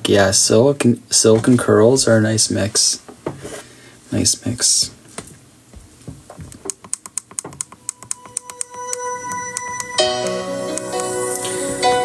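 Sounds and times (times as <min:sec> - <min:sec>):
electronic music tones: 0:07.6 - 0:12.0.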